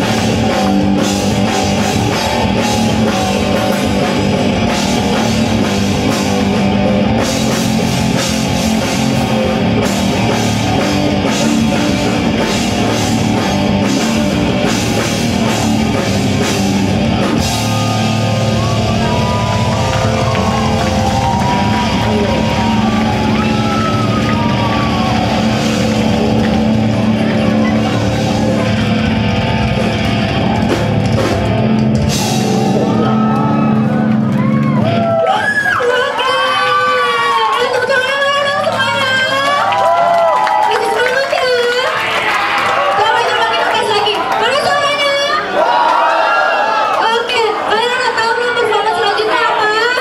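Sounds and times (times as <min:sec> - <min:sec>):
live rock band playing: 0:00.0 - 0:35.4
electric guitars: 0:00.0 - 0:44.4
driving drum kit: 0:00.0 - 0:45.0.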